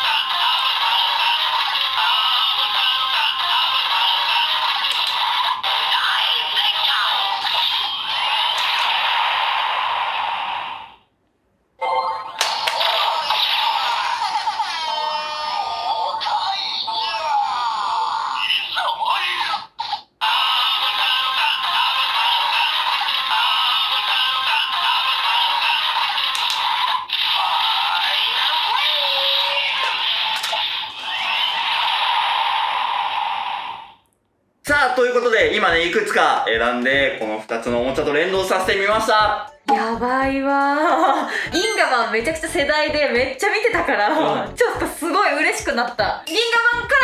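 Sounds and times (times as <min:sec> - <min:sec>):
toy speaker music: 0:00.0 - 0:08.7, 0:35.4 - 0:40.4, 0:41.4 - 0:43.4, 0:44.2 - 0:47.0.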